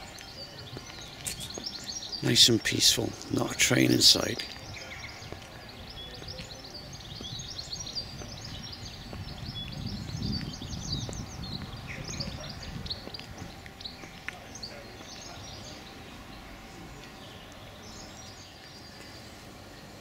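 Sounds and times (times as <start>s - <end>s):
songbirds chirping and trilling: 0.0s - 20.0s.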